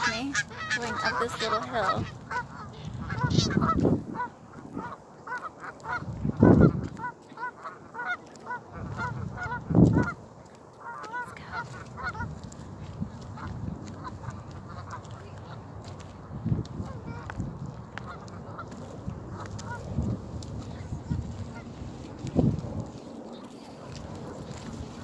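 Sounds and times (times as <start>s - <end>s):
birds calling: 0.0s - 12.4s
wind buffeting microphone: 0.0s - 25.0s.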